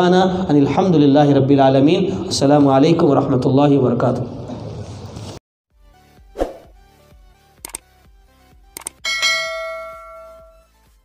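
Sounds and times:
mouse clicks: 7.6 - 7.8
notification bell ding: 9.0 - 10.7.

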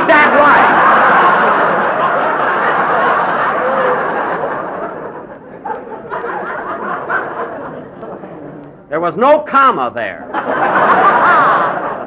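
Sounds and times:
studio audience laughing: 0.1 - 8.7, 10.2 - 12.0.

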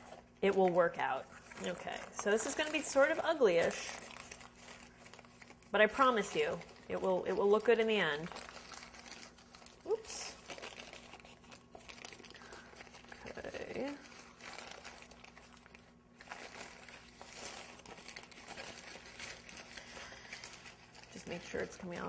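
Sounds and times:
parchment paper crinkling: 0.0 - 22.0.

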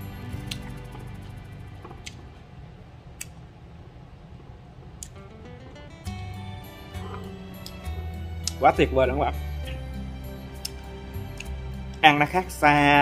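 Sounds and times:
soft background music: 0.0 - 2.7, 5.1 - 13.0.

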